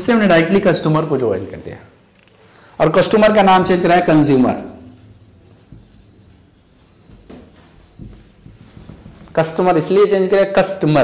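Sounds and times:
marker writing on whiteboard: 2.9 - 9.9.

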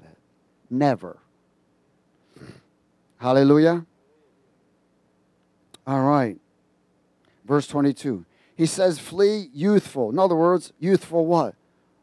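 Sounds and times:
man speaking: 3.2 - 3.9, 7.5 - 11.6.

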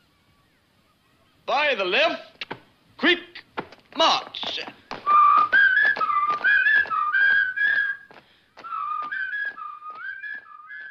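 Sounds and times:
footsteps: 3.4 - 10.9
person whistling a tune: 5.0 - 10.9.

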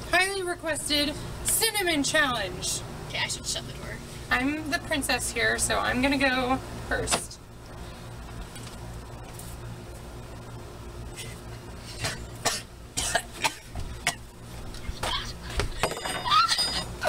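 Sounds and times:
person coughing and sputtering: 11.2 - 14.3.

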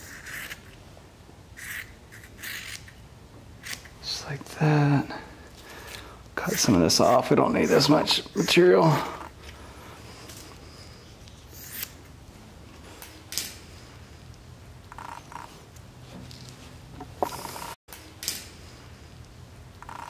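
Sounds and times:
low steady hum: 9.0 - 19.9.

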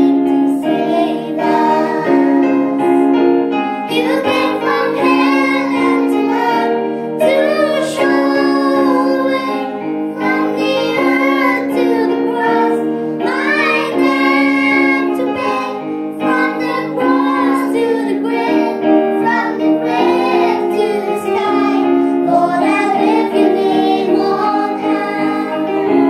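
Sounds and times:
children singing: 0.0 - 3.1, 3.8 - 26.0
electronic keyboard chords: 0.0 - 26.0
girl singing into a microphone: 3.9 - 25.5.

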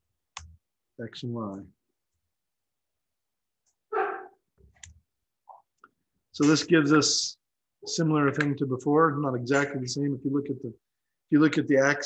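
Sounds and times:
dog barking: 3.9 - 4.4.

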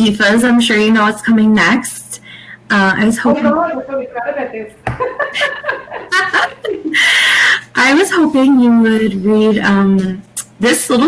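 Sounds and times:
women laughing: 4.9 - 7.6.

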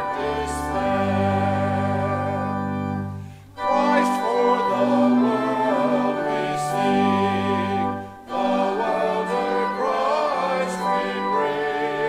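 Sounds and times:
congregation singing a hymn: 0.0 - 12.0
organ: 0.0 - 12.0.

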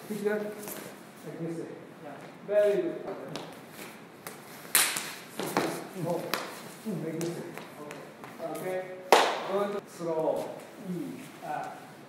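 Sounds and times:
hands slapping arm: 3.3 - 6.6.

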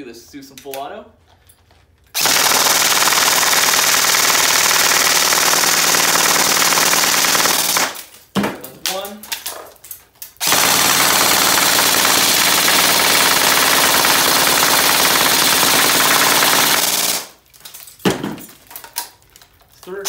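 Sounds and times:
airsoft gun firing full auto: 2.2 - 8.0, 10.4 - 17.4.

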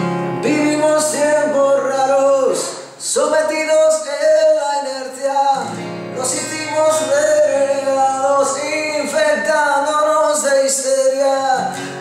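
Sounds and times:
man singing rock song: 0.3 - 11.8.

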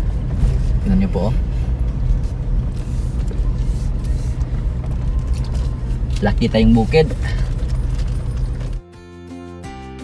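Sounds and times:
car engine and road rumble: 0.0 - 9.0.

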